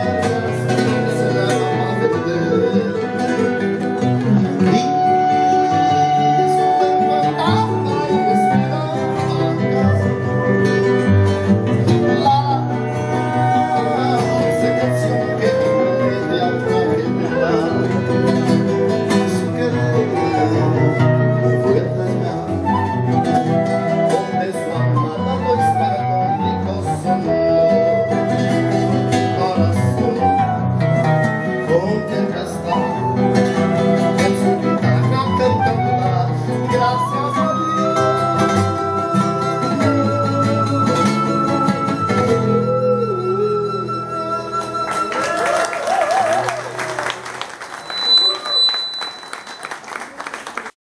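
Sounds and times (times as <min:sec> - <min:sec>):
acoustic guitars plucking chords: 0:00.0 - 0:45.3
flute melody: 0:00.0 - 0:47.0, 0:47.7 - 0:50.0.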